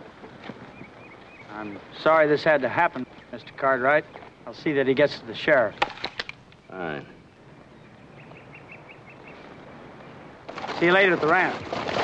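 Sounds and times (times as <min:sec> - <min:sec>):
faint outdoor hiss: 0:00.0 - 0:11.6
bird chirping: 0:00.5 - 0:10.4.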